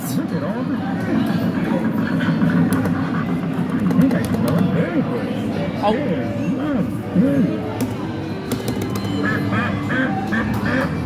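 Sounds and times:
background voices and chatter: 0.0 - 11.0.

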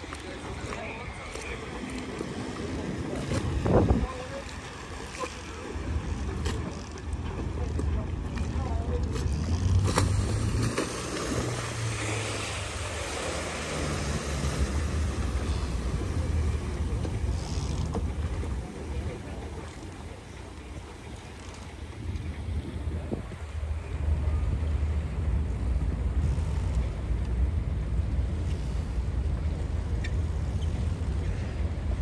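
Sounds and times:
wind buffeting microphone: 0.0 - 5.0, 21.1 - 28.2
low rumble of boat engines: 0.0 - 32.0.

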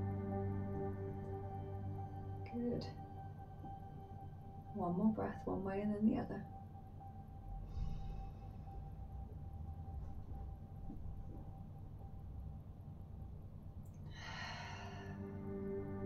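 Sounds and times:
quiet ambient music: 0.0 - 16.0
person breathing slowly: 7.6 - 9.2, 14.1 - 15.4.

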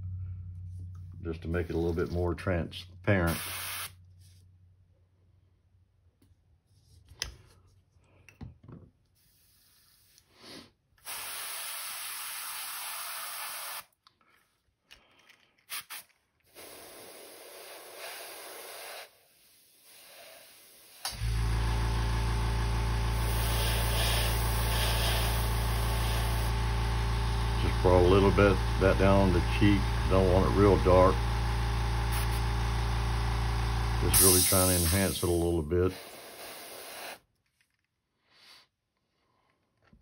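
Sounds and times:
air compressor humming: 3.2 - 4.0, 11.0 - 13.8, 20.4 - 37.2
airbrush spraying: 3.3 - 4.0, 9.2 - 10.3, 11.1 - 13.8, 15.7 - 21.0, 23.1 - 26.5, 32.1 - 32.5, 34.1 - 37.2.

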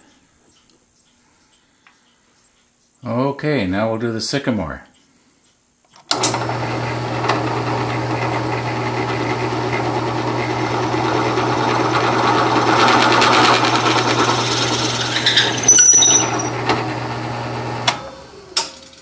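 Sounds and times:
drill press motor hum: 6.1 - 18.7
drill bit cutting wood: 6.3 - 17.8.

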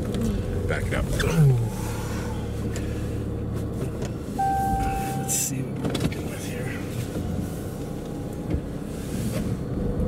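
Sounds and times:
diesel engine running: 0.0 - 9.8
steady electronic beep: 4.4 - 5.6.

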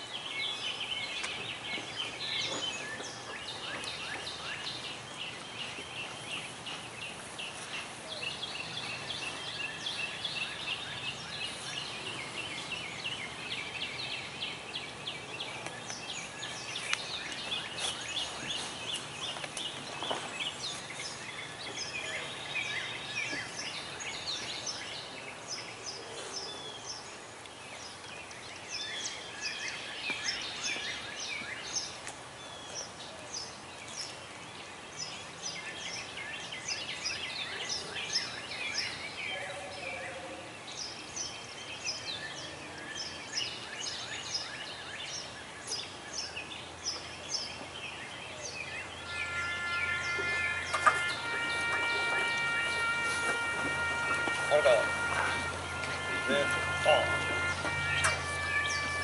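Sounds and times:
outdoor background noise: 0.0 - 59.0
small birds chirping: 0.0 - 59.0
sustained musical note: 49.4 - 59.0.

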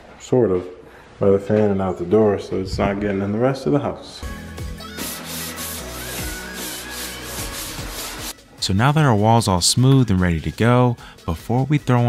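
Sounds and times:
sanding block sanding drywall: 4.8 - 8.4.

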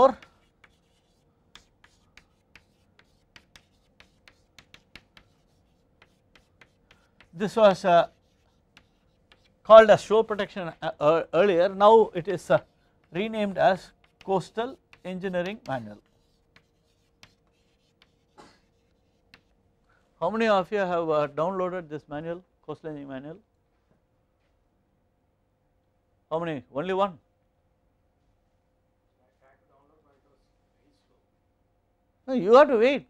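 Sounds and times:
chalk tapping and scratching: 0.0 - 11.0, 12.0 - 19.6.

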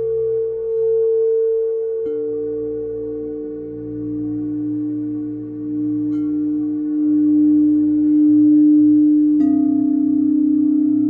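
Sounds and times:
singing bowl ringing: 0.0 - 11.0
singing bowl strike: 1.1 - 11.0.

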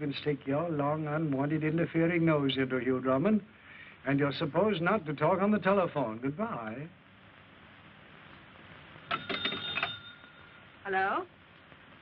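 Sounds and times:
telephone bell ringing: 9.1 - 10.6.

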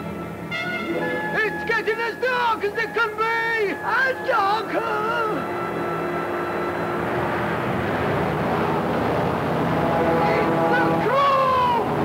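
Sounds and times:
low musical tones: 0.0 - 12.0.

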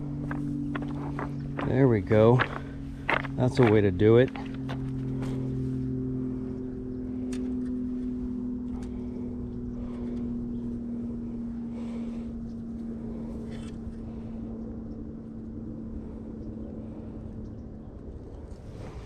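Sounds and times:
motor drone: 0.0 - 19.0.

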